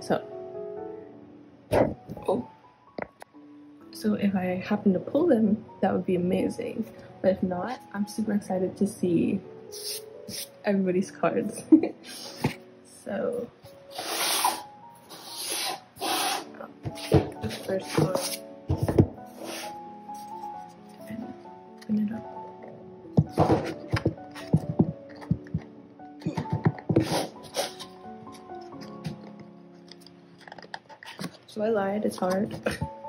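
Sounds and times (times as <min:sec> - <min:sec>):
soft piano music: 0:00.0 - 0:33.0
cardboard boxes scraping: 0:13.9 - 0:19.8
person speaking: 0:16.5 - 0:19.0, 0:31.2 - 0:33.0.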